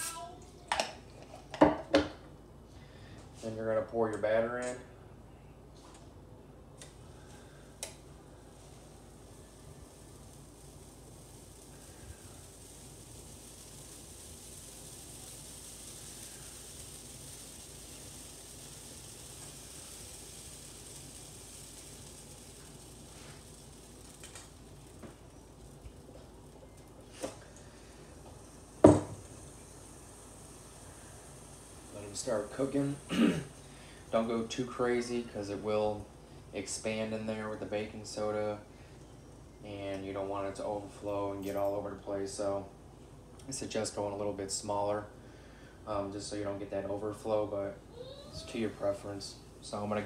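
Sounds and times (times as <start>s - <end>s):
waffle batter sizzling: 0.0s - 0.9s, 6.8s - 39.2s, 47.9s - 50.0s.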